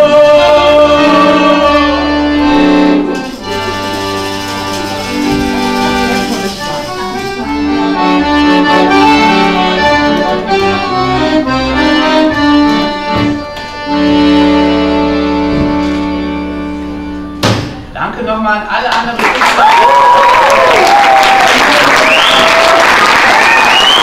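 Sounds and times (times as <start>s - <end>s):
accordion playing slow chords: 0.0s - 17.4s
sharp accented hit: 17.4s - 18.0s.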